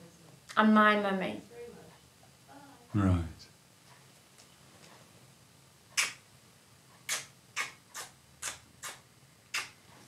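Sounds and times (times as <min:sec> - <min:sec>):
woman's kissing smacks: 0:06.0 - 0:06.2, 0:07.0 - 0:09.8.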